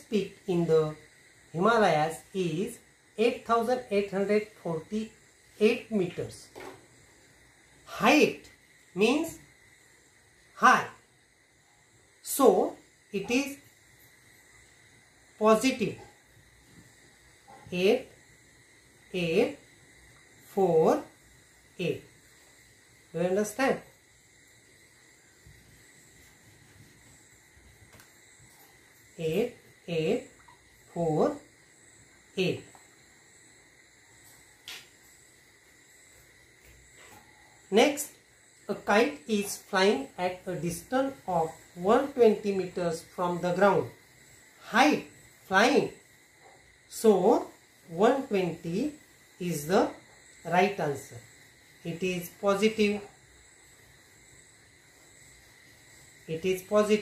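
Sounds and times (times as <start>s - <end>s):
faint steady hiss: 0.0s - 57.0s.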